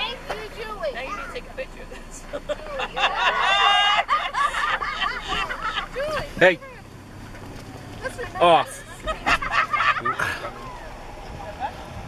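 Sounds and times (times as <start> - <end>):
people laughing: 1.9 - 6.2, 8.7 - 10.8.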